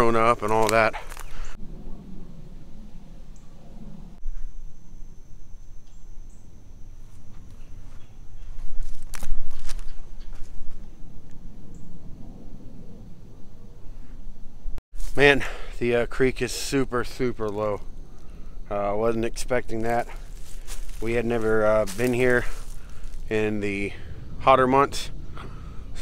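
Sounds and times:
footsteps on forest floor: 0:00.0 - 0:01.6, 0:07.0 - 0:10.8, 0:15.0 - 0:15.5, 0:19.2 - 0:23.5.

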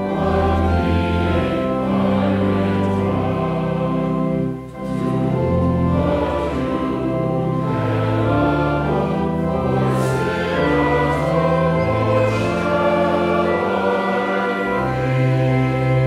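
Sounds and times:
congregation singing a hymn: 0:00.0 - 0:16.0
organ accompaniment: 0:00.0 - 0:16.0.

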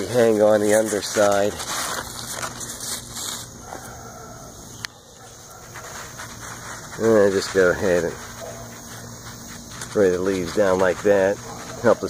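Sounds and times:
leaves rustling: 0:00.0 - 0:12.0.

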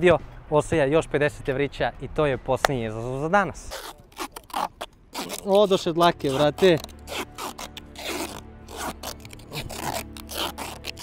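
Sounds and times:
adhesive tape ripping: 0:03.6 - 0:11.0.

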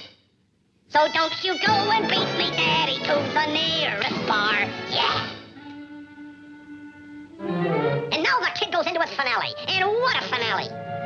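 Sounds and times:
orchestral cartoon music: 0:01.1 - 0:11.0.

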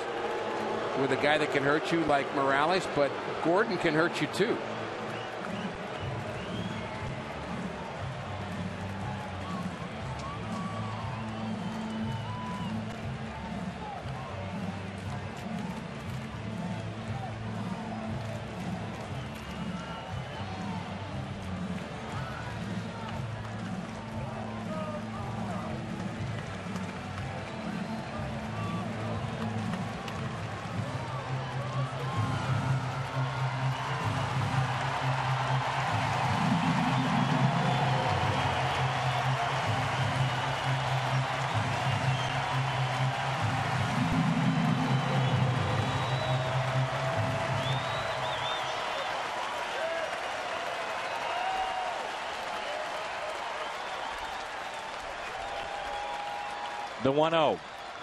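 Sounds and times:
stadium music with low beat: 0:00.0 - 0:50.4
stadium crowd noise: 0:00.0 - 0:58.0.

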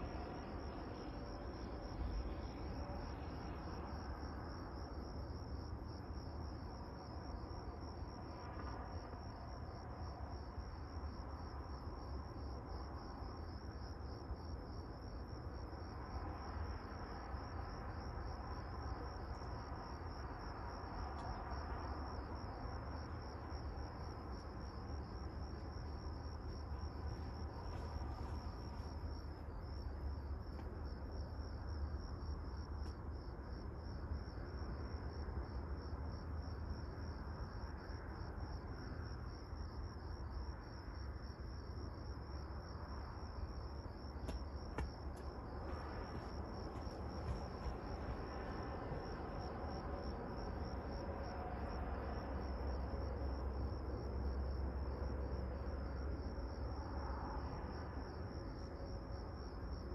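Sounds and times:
crickets chirping: 0:00.0 - 0:59.9
low steady rumble: 0:42.4 - 0:58.0.

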